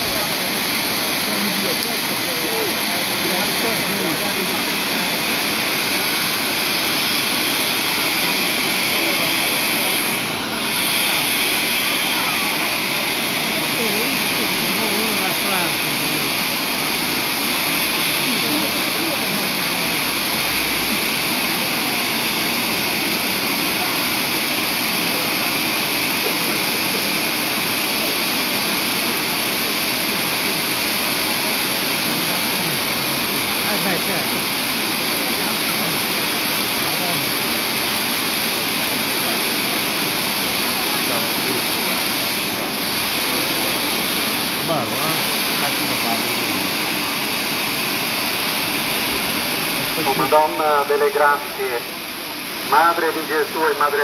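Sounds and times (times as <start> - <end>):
fountain fireworks hissing: 0.0 - 54.0.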